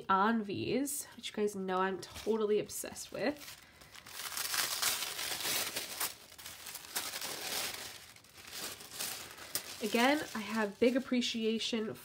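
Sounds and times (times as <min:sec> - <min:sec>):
tissue paper crinkling: 0:02.0 - 0:11.6.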